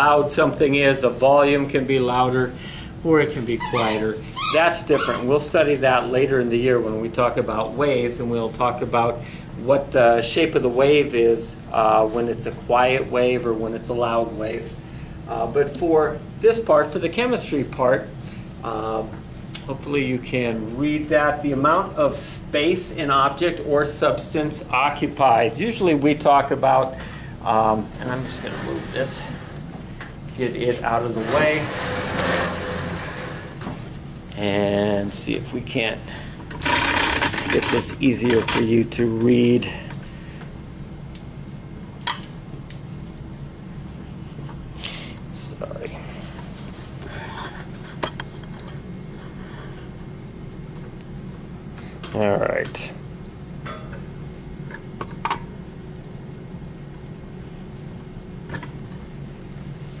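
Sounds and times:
low room hum: 0:00.0 - 1:00.0.

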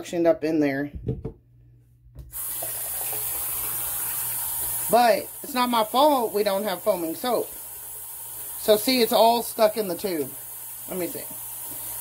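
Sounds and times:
faucet running into sink: 0:02.3 - 0:12.0.

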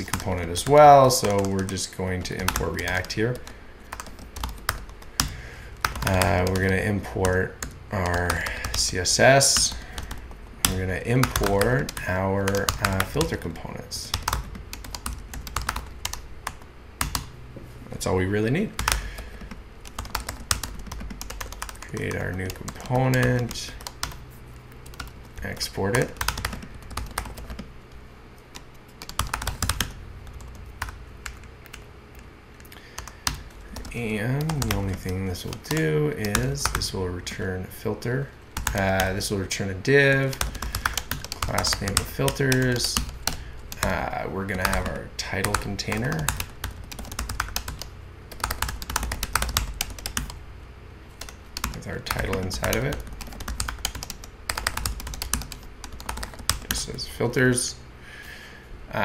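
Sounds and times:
typing on computer keyboard: 0:00.0 - 0:08.9, 0:09.6 - 0:13.4, 0:14.1 - 0:17.3, 0:18.8 - 0:24.2, 0:24.8 - 0:27.7, 0:28.6 - 0:31.8, 0:33.0 - 0:36.9, 0:40.3 - 0:50.4, 0:51.2 - 0:56.8.

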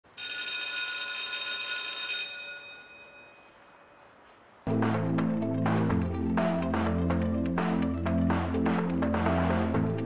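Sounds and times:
bell ringing: 0:00.2 - 0:04.0.

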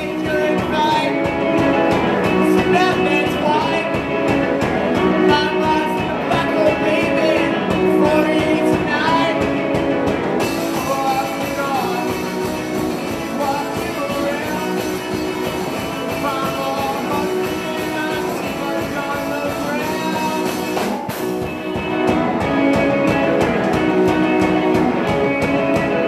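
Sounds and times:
person singing: 0:00.0 - 0:09.8, 0:10.4 - 0:21.2
distorted guitar: 0:00.0 - 0:26.0
drum kit: 0:00.0 - 0:26.0.

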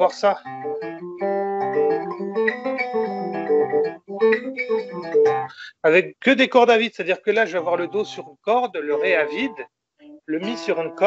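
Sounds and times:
acoustic guitar playing a scale: 0:00.0 - 0:05.6, 0:07.4 - 0:11.0.

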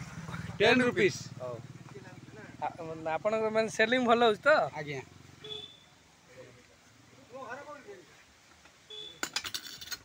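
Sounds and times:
metallic clinks: 0:09.2 - 0:10.0.

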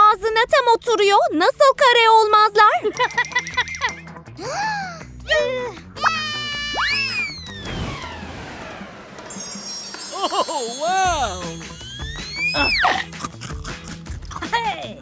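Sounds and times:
background music: 0:00.2 - 0:15.0
swooping cartoon voice sounds: 0:06.0 - 0:07.4, 0:10.9 - 0:13.1
twinkling chime effect: 0:09.2 - 0:12.4.

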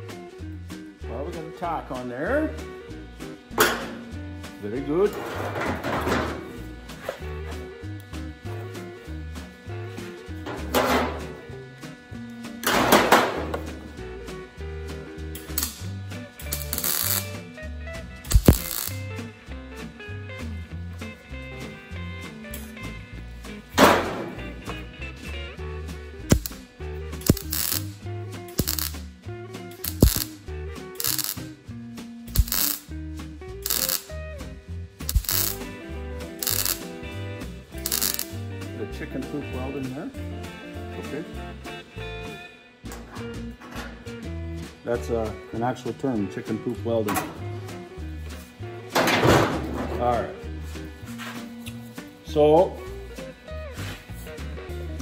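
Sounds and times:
background music with steady beat: 0:00.0 - 0:55.0
welding arc crackle: 0:01.2 - 0:25.4, 0:26.1 - 0:31.6, 0:32.3 - 0:34.3, 0:35.0 - 0:40.1.

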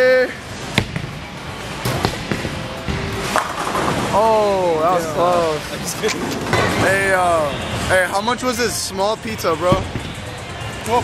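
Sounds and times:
background music: 0:00.2 - 0:11.0
bowling ball rolling: 0:01.8 - 0:04.2, 0:05.9 - 0:07.2.

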